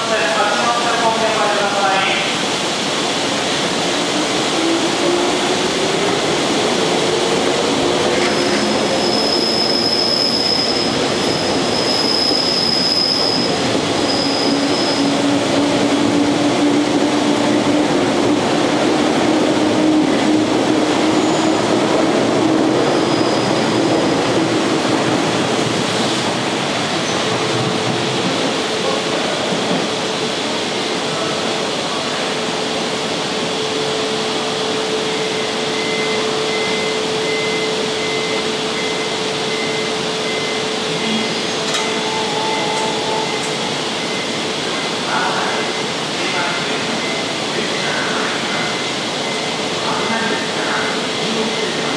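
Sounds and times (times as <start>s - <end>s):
train wheels rumbling on rail: 0.0s - 51.9s
high-pitched wheel squeal: 8.1s - 15.3s, 22.8s - 23.8s.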